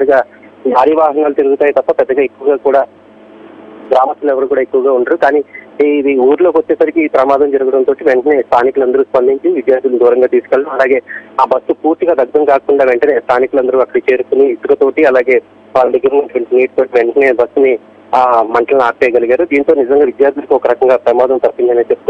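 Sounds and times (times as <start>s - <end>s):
man speaking over telephone: 0.0s - 2.9s, 3.9s - 22.0s.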